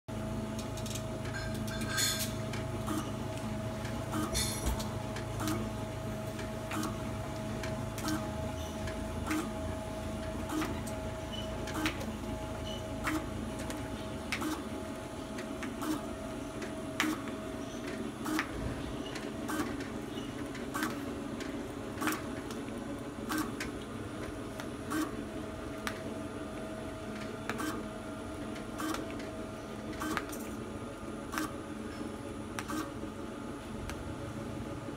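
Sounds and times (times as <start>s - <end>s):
machine motor hum and whir: 0.1s - 34.9s.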